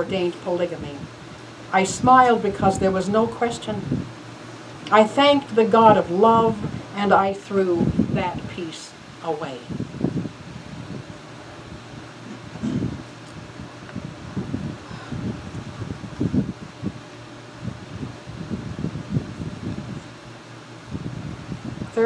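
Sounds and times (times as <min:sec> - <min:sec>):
ventilation hum: 0:00.0 - 0:22.0.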